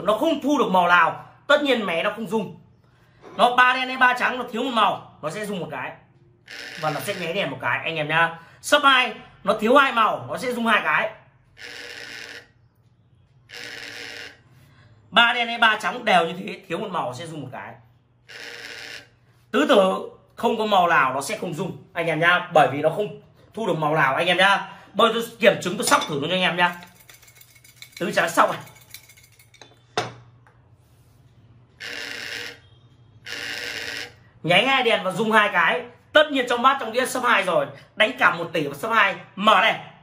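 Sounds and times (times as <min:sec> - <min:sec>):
vibration alert buzzing: 0:06.5 - 0:07.4, 0:11.6 - 0:12.6, 0:13.4 - 0:14.5, 0:18.2 - 0:19.2, 0:31.8 - 0:34.2.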